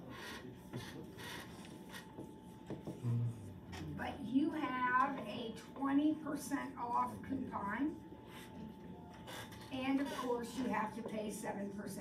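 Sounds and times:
person's wordless vocal sound: 0:03.0 - 0:03.4.

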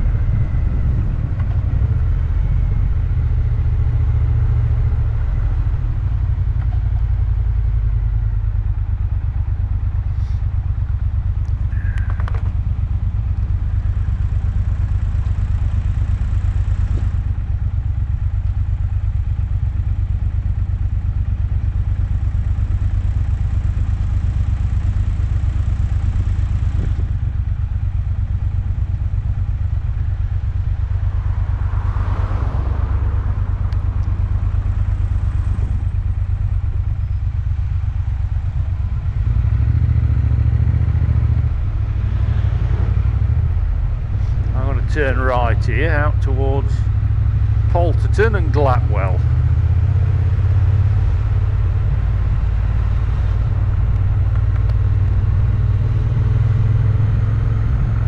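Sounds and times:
motorcycle engine running steadily: 0:00.0 - 0:58.0.

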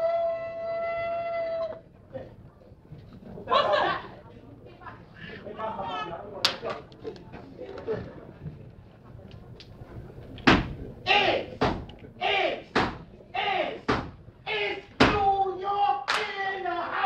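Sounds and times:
shouted chant: 0:11.1 - 0:11.6, 0:12.2 - 0:12.7, 0:13.3 - 0:13.9, 0:14.5 - 0:17.0
stomps and claps: 0:11.6 - 0:11.9, 0:12.7 - 0:13.0, 0:13.9 - 0:14.2.

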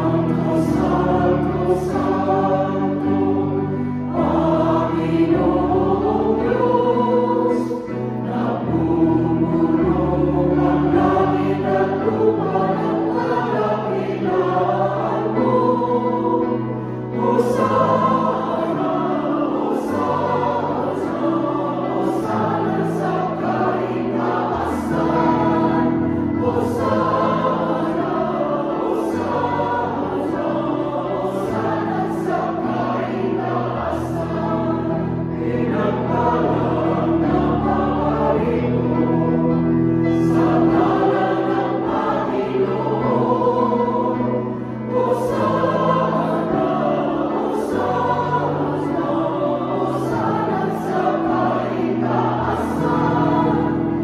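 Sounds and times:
mixed choir singing a hymn: 0:00.0 - 0:54.0.

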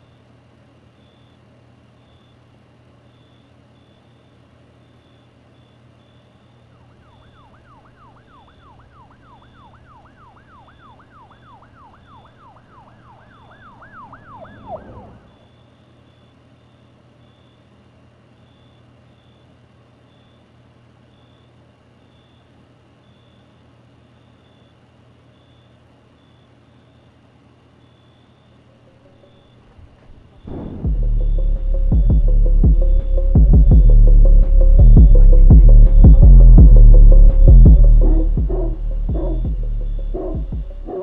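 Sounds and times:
distant siren yelping: 0:05.0 - 0:17.6, 0:27.9 - 0:41.0.

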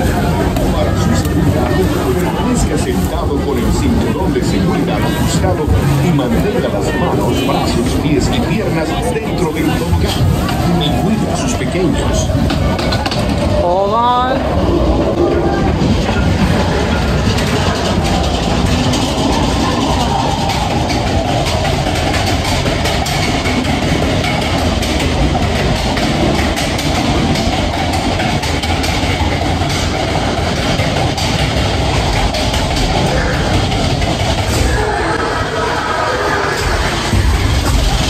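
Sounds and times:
coaster wheels rumbling on rail: 0:00.0 - 0:38.0.

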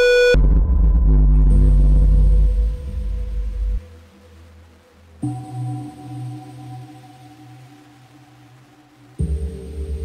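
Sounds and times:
deep bass rumble: 0:00.3 - 0:03.8.

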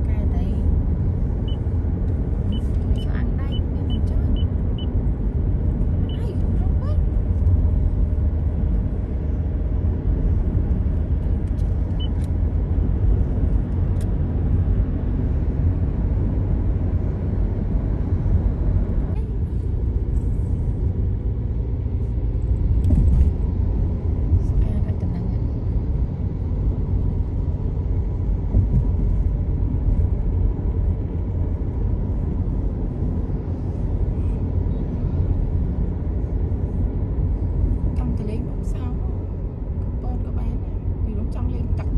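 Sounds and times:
car cabin road rumble: 0:00.0 - 0:41.9.

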